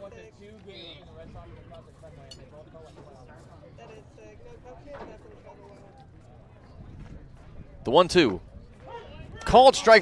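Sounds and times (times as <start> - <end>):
background chatter of spectators: 0.0 - 10.0.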